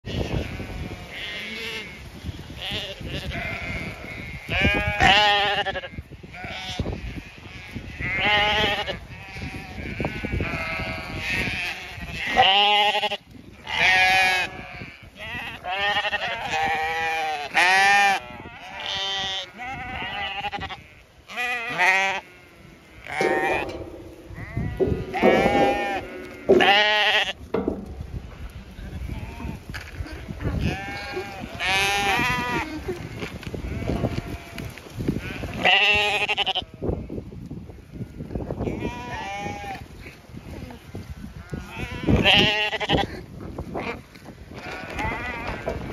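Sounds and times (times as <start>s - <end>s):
sheep bleating: 0.1s - 2.0s, 2.6s - 27.8s, 28.8s - 37.0s, 38.6s - 39.8s, 41.4s - 43.2s, 44.6s - 45.9s.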